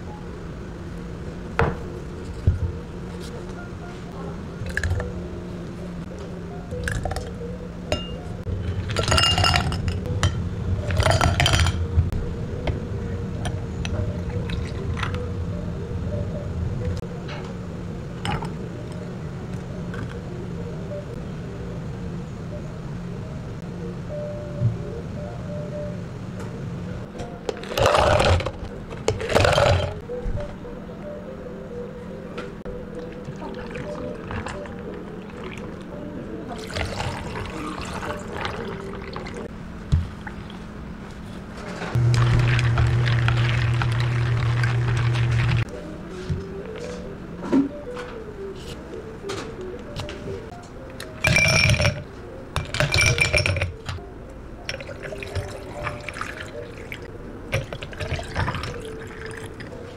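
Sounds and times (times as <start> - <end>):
glassware clinking: 7.9 - 8.3, 8.9 - 11.8, 51.2 - 52.0, 52.6 - 53.9
milk pouring over ice: 36.6 - 39.4, 42.0 - 45.6, 54.7 - 59.6
electric motor humming: 42.0 - 45.6.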